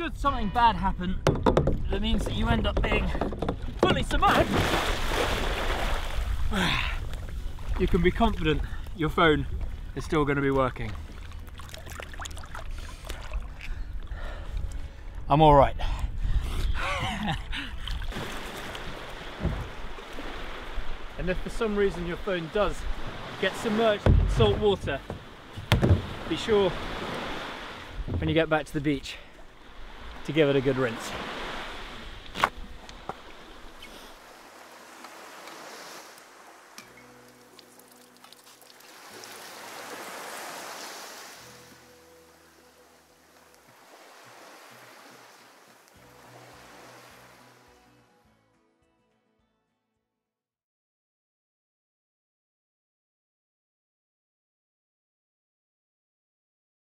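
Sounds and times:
waves washing: 2.0 - 13.7, 17.7 - 47.8
seawater sloshing and splashing: 2.4 - 6.5, 10.8 - 13.7, 17.8 - 28.5
soft background music: 36.7 - 49.6.

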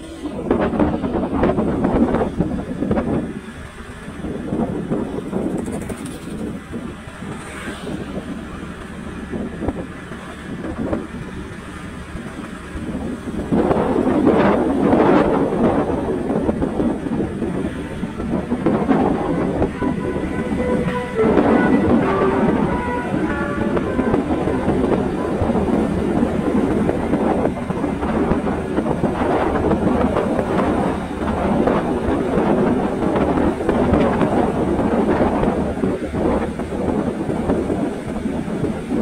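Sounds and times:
motorcycle engine rumble: 0.0 - 39.0
tyres on road: 0.0 - 39.0
wind buffeting microphone: 0.0 - 39.0.

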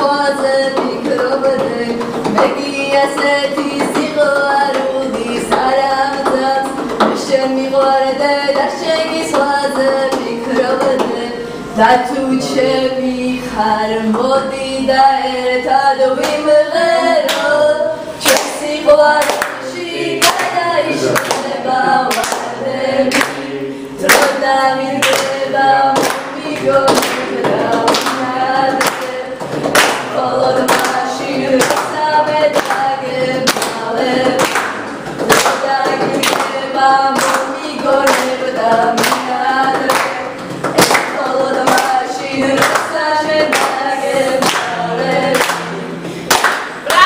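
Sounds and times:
hand claps: 0.0 - 11.3, 16.1 - 47.0
group singing: 0.0 - 47.0.

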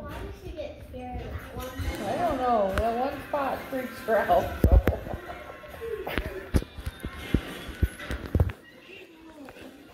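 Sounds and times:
film music from television: 0.0 - 9.9.

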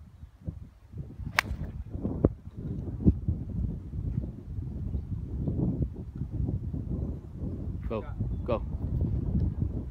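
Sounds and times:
wind rumble on microphone: 0.0 - 9.9
golf club striking ball: 1.3 - 1.8.

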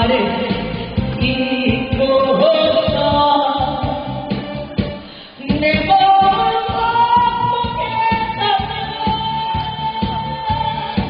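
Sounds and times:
woman singing into a microphone: 0.0 - 4.5, 5.2 - 11.0
backing track with steady beat: 0.0 - 11.0.

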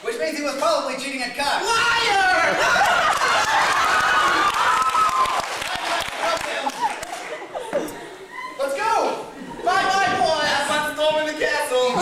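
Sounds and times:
audience laughter: 6.4 - 8.8.

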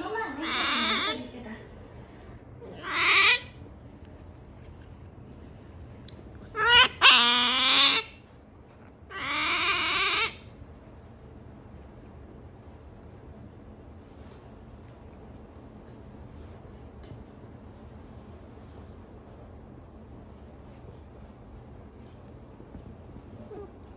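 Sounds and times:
otter whining calls: 2.7 - 3.6, 6.5 - 8.2.

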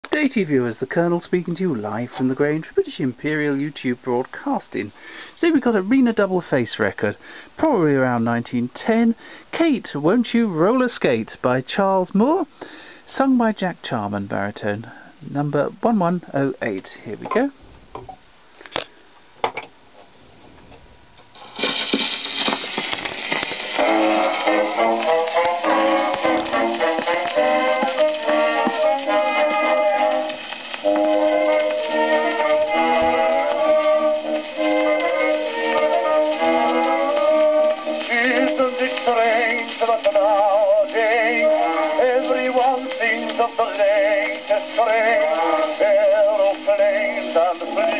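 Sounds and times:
thin music on gramophone: 20.4 - 47.9.

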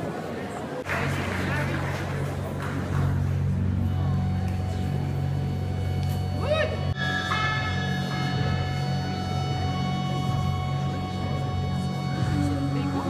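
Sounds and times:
steady low drone: 0.8 - 13.0
ambient electronic music: 0.9 - 13.0.

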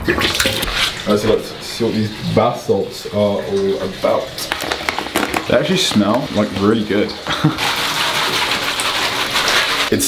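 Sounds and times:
tap water filling bathtub: 0.0 - 10.0.

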